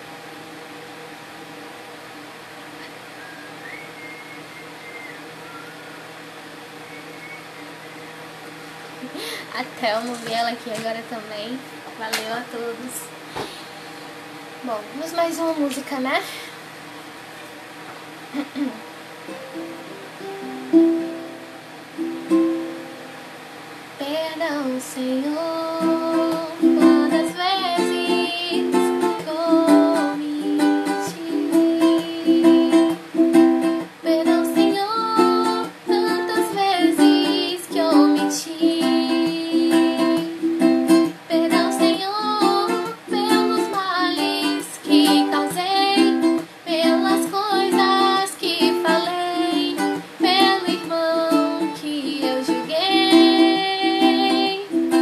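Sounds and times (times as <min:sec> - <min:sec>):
ukulele strumming: 0:19.2 - 0:23.2, 0:25.3 - 0:55.0
woman singing: 0:24.0 - 0:55.0.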